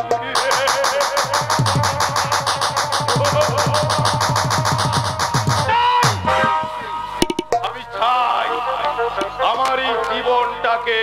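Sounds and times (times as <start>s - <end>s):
hand drum fast rhythm: 0.0s - 7.8s
melody instrument holding notes: 4.8s - 9.6s.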